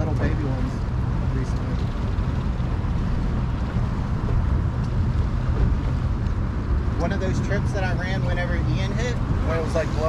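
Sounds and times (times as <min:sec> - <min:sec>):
boat engine rumbling: 0:00.0 - 0:10.0
wind buffeting microphone: 0:00.0 - 0:10.0.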